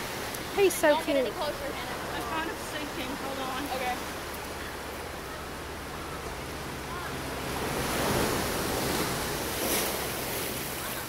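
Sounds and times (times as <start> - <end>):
ocean surf on sandy beach: 0.0 - 11.0.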